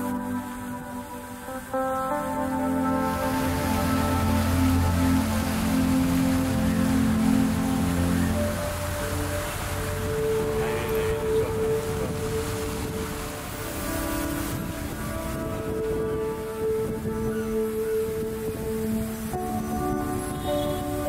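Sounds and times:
fountain water splashing: 0.0s - 21.0s
soft background music: 0.0s - 21.0s.

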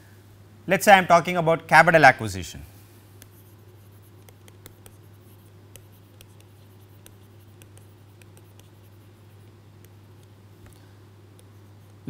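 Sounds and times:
low electrical hum: 0.0s - 12.0s
stylus tapping on tablet screen: 3.2s - 10.8s.

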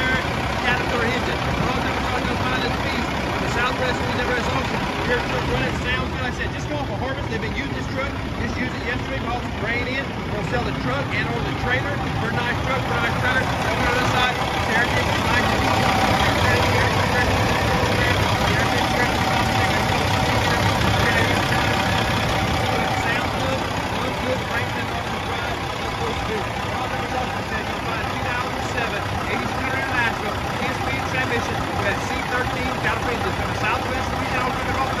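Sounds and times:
diesel truck engine idling: 0.0s - 35.0s
indistinct talk: 0.0s - 35.0s.

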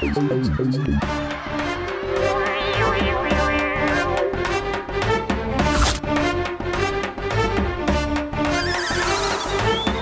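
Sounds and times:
comedic music with steady beat: 0.0s - 10.0s
high warbling sound effect: 1.8s - 4.6s.

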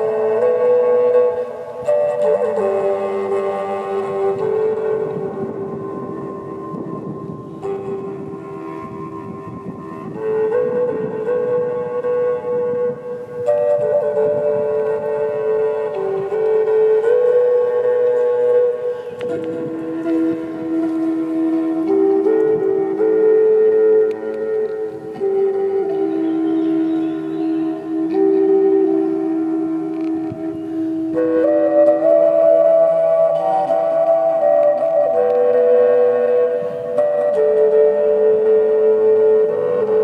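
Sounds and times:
wooden flute slow melody: 0.0s - 40.0s.

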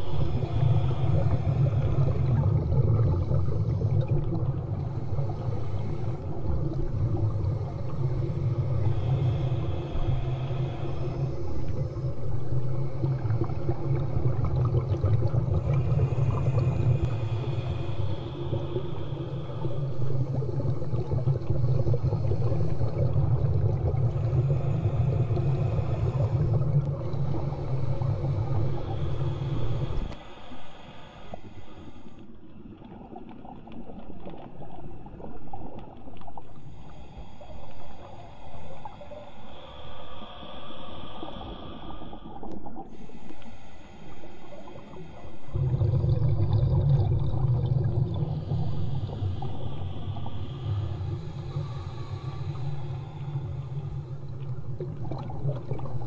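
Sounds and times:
breathing through a snorkel: 0.0s - 32.4s, 36.3s - 56.0s
faint water sounds: 0.0s - 56.0s
low underwater rumble: 44.0s - 56.0s.

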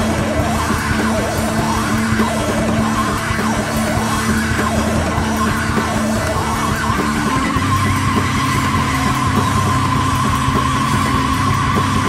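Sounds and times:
noise-rock band playing: 0.0s - 12.0s.

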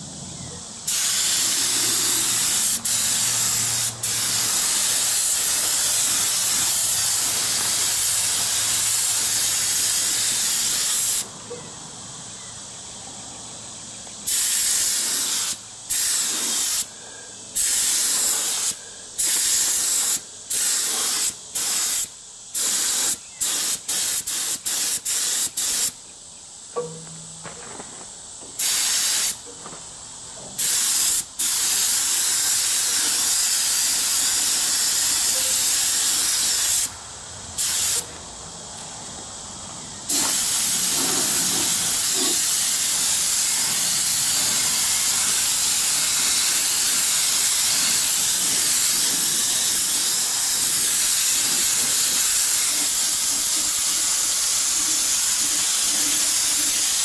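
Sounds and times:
paint spray gun hissing: 0.9s - 11.4s, 14.2s - 26.0s, 28.5s - 29.5s, 30.5s - 37.0s, 37.6s - 38.1s, 40.0s - 57.0s.

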